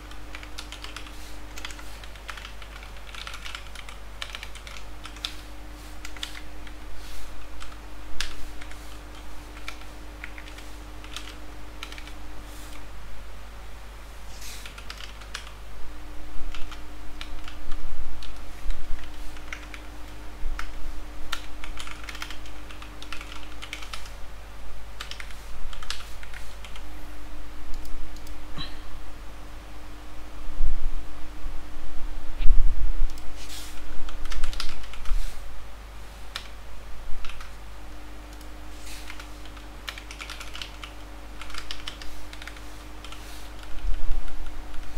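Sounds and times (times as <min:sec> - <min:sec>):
computer keyboard typing: 0:00.0 - 0:12.8, 0:14.5 - 0:15.6, 0:16.5 - 0:17.6, 0:18.2 - 0:19.9, 0:20.6 - 0:24.2, 0:25.0 - 0:26.8, 0:34.1 - 0:35.2, 0:37.2 - 0:37.6, 0:38.3 - 0:44.9
faint steady hum: 0:00.0 - 0:44.9.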